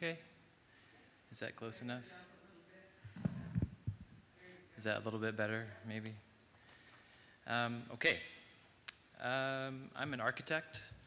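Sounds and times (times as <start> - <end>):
microphone handling thumps: 3.0 - 4.3.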